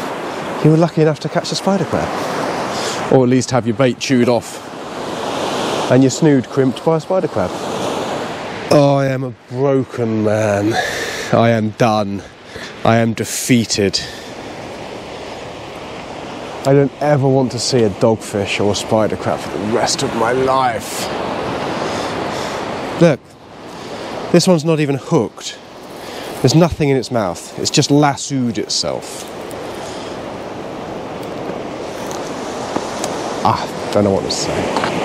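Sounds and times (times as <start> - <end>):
sea surf washing on beach: 0.0 - 35.0.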